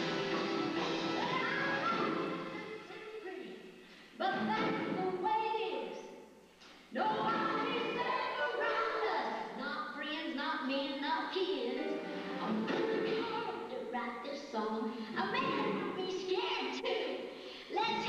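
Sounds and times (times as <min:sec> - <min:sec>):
women singing into microphones: 0:06.9 - 0:13.9.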